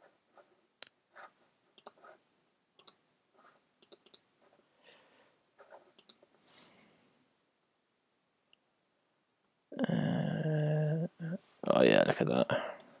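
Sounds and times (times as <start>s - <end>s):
computer mouse clicks: 1.8s - 2.1s, 2.8s - 3.0s, 3.8s - 4.2s, 5.9s - 6.2s
soft brushing sounds: 3.3s - 3.7s, 4.3s - 4.8s, 5.5s - 6.9s.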